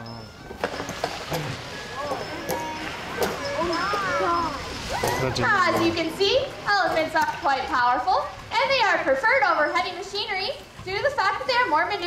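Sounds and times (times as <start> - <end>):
outdoor ambience: 0.0 - 12.0.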